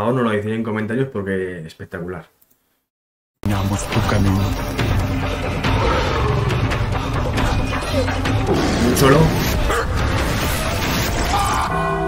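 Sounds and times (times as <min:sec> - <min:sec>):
film score music: 0:03.4 - 0:12.0
jaguar roaring: 0:05.5 - 0:10.2.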